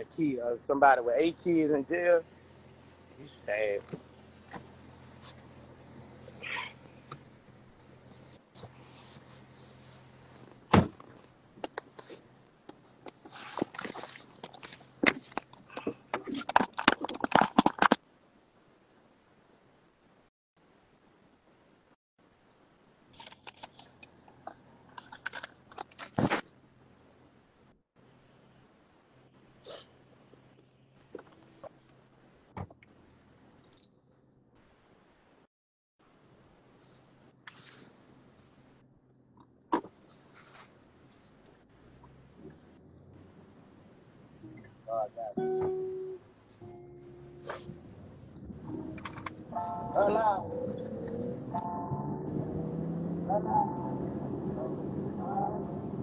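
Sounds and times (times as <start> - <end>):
faint scratchy rustling: 7.7 - 15.6, 36.7 - 43.4.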